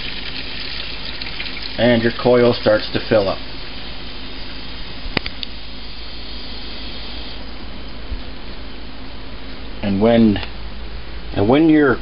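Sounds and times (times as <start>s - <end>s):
water running through hose: 0.0s - 3.4s
sharp click: 5.2s - 5.5s.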